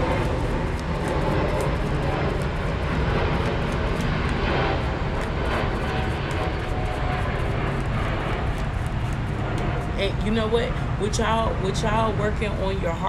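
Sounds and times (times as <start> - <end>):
cards being shuffled: 0.0 - 10.0
low outdoor rumble: 0.0 - 13.0.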